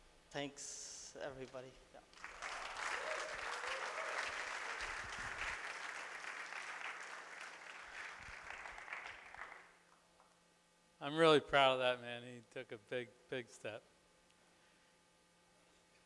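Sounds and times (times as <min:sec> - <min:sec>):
audience applauding: 0:02.2 - 0:09.8.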